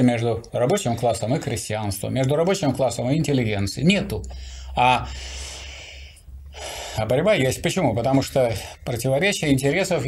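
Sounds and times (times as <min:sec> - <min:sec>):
man breathing into microphone: 0:04.3 - 0:07.1.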